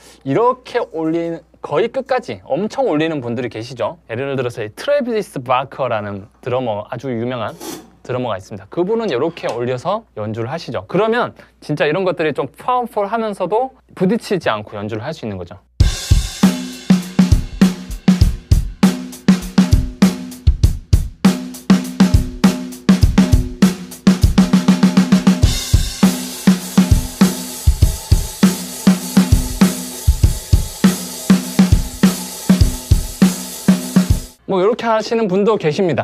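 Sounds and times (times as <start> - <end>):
drum kit rock groove: 15.8 - 34.4.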